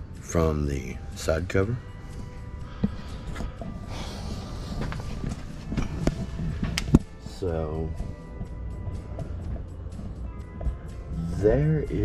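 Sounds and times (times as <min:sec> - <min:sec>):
footsteps: 0:02.0 - 0:11.1.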